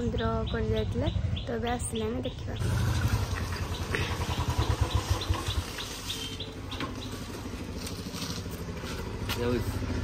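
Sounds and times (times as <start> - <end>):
birds chirping: 0.0 - 10.0
motorcycle engine running: 0.0 - 10.0.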